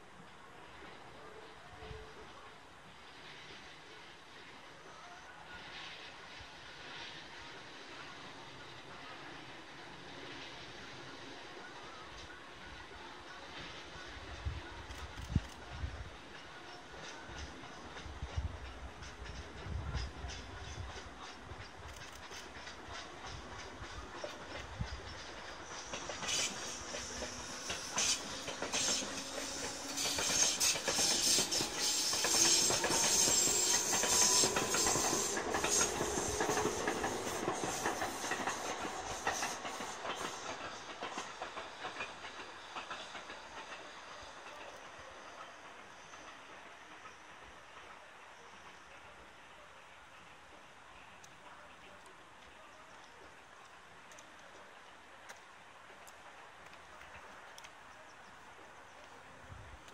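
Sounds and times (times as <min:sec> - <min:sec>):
train wheels clacking over rail joints: 0:14.9 - 0:45.0
electric train motors humming: 0:24.9 - 0:41.7.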